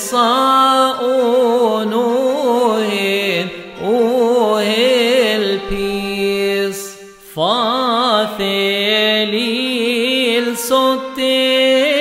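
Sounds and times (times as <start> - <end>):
person chanting a hymn: 0.0 - 12.0.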